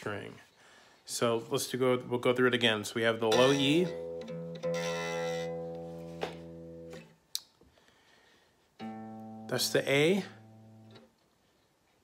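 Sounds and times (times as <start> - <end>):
guitar string plucked: 3.2 - 7.2, 8.8 - 11.1
electric guitar string ringing: 3.3 - 7.1, 8.8 - 11.0.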